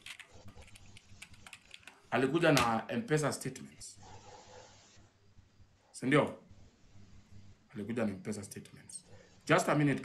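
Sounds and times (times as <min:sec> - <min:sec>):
computer keyboard typing: 0:00.0 - 0:02.0.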